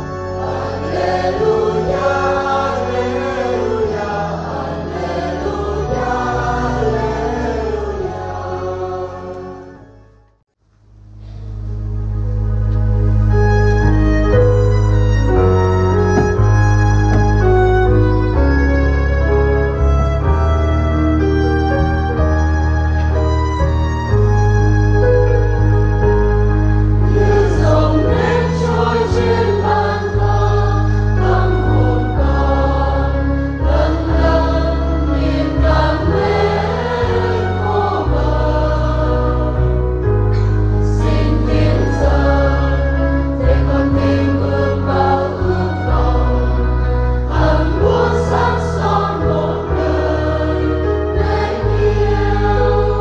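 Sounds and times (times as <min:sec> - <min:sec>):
church choir singing a hymn: 0:00.0 - 0:10.0, 0:13.3 - 0:21.9, 0:26.7 - 0:53.0
instrumental accompaniment: 0:00.0 - 0:10.4, 0:11.2 - 0:53.0
sustained bass notes: 0:10.6 - 0:53.0.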